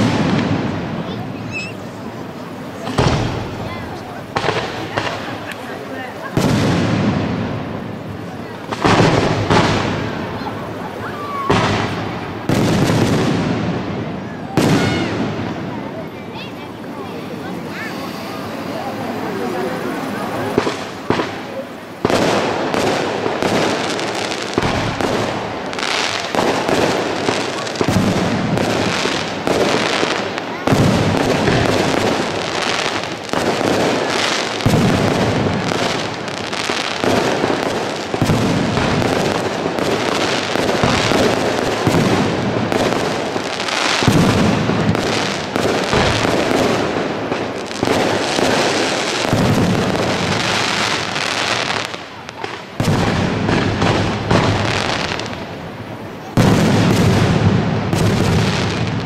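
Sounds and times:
fireworks bursting: 0:00.0 - 0:59.0.

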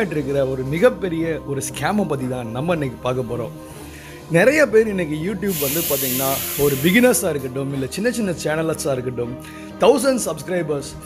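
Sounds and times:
hissing noise: 0:05.5 - 0:07.2
person speaking: 0:05.5 - 0:07.4.

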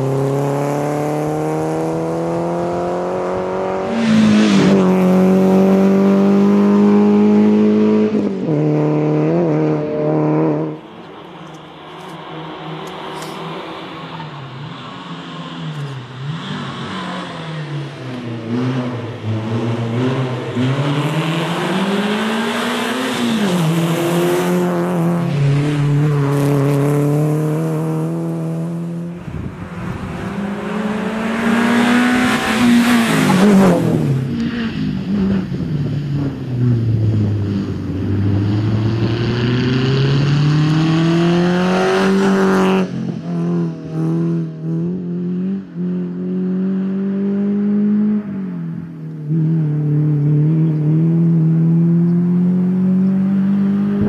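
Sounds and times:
car passing by: 0:00.0 - 0:35.6
rally car engine revving: 0:00.0 - 0:54.0.

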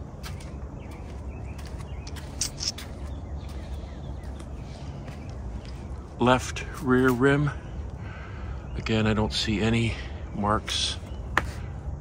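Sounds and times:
birds chirping: 0:00.0 - 0:12.0
steady low rumble: 0:00.0 - 0:12.0.

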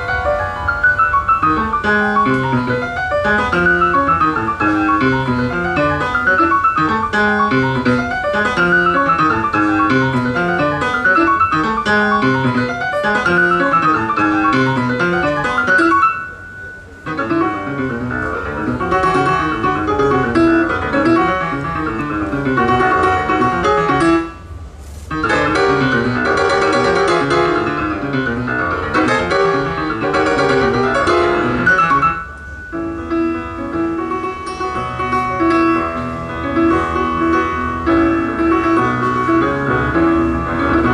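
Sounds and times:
solo jazz piano: 0:00.0 - 0:40.9.

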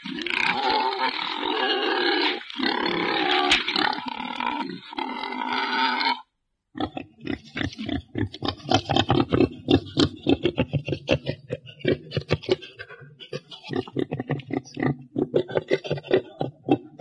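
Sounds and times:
boar squealing roars: 0:00.0 - 0:07.0
boar grunts: 0:06.8 - 0:17.0.

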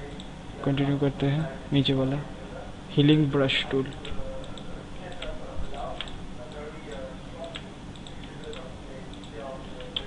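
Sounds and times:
computer mouse clicks: 0:06.0 - 0:10.0.

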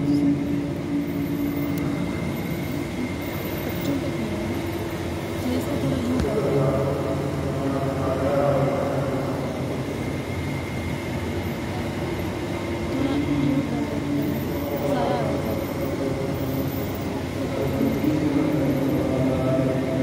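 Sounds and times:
crowd murmur: 0:00.0 - 0:20.0
man chanting with echo: 0:17.4 - 0:20.0.

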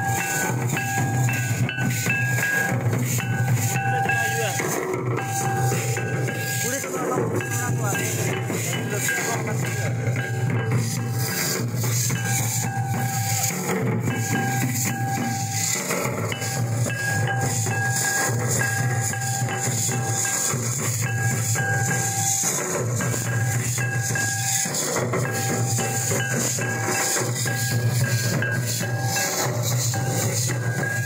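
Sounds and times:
barrel drums beaten with sticks: 0:00.0 - 0:31.0
held high tone: 0:00.0 - 0:31.0.

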